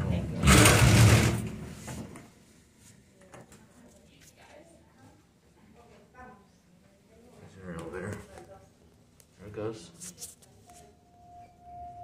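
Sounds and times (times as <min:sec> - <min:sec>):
elevator doors sliding shut: 0:00.4 - 0:01.6.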